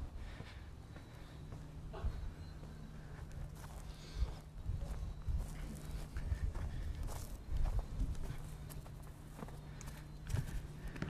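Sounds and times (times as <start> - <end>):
footsteps on dirt ground: 0.0 - 11.0.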